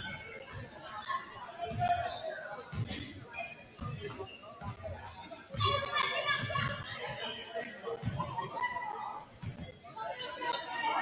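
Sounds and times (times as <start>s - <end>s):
children's voices and chatter: 0.0s - 11.0s.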